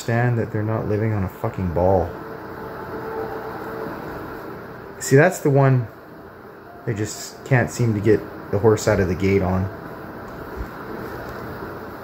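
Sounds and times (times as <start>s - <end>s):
faint steady tone: 0.0s - 12.0s
room background hum: 0.0s - 12.0s.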